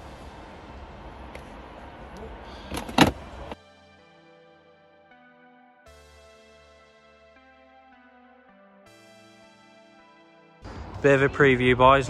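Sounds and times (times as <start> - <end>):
soft music: 3.5 - 12.0.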